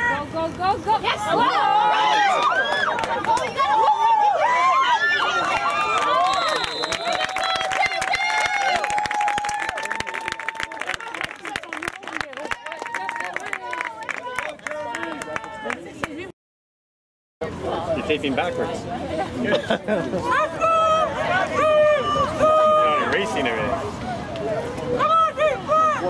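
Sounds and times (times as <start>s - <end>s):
crowd shouting and cheering: 1.0s - 16.2s, 20.1s - 26.0s.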